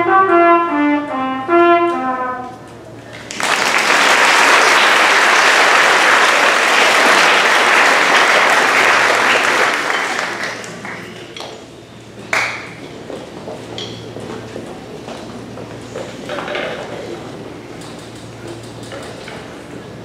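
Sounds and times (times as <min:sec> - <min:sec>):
audience applauding: 0:03.1 - 0:11.2.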